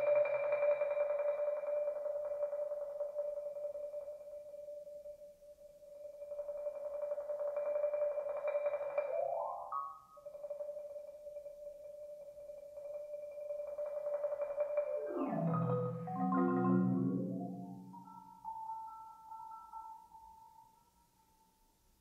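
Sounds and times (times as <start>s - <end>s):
marimba roll: 9.0s - 10.0s, 14.6s - 20.2s
rising marimba run: 15.0s - 18.5s.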